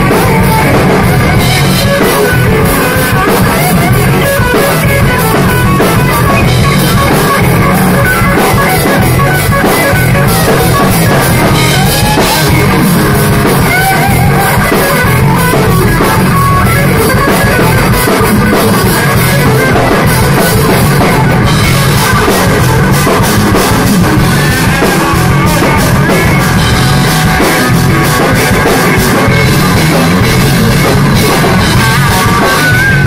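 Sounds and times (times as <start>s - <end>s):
drum kit: 0.0s - 33.0s
electric guitar lines with bent notes: 0.0s - 33.0s.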